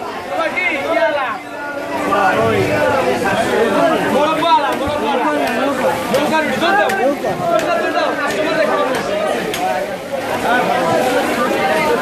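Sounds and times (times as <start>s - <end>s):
babble of voices: 0.0s - 12.0s.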